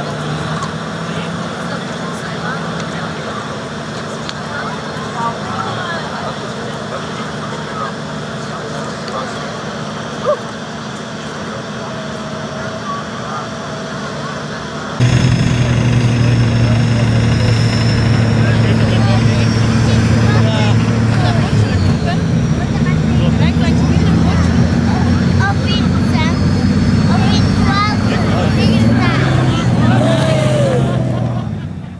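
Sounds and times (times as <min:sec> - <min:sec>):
crowd voices and shouts: 0:00.0 - 0:31.9
off-road vehicle engine under load: 0:00.0 - 0:31.9.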